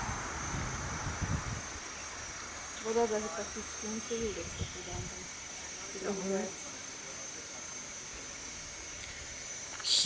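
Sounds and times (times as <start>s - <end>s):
background hiss: 0.0s - 10.0s
insects droning: 0.0s - 10.0s.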